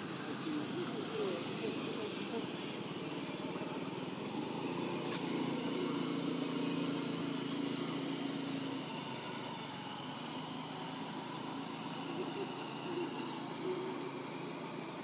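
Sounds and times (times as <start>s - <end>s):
constant hiss: 0.0s - 15.0s
small engine humming: 0.0s - 15.0s.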